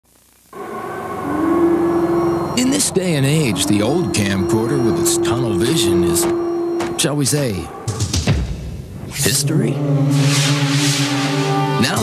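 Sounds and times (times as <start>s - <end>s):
droning soundtrack tone: 0.5s - 7.6s
steady higher note: 0.6s - 7.2s.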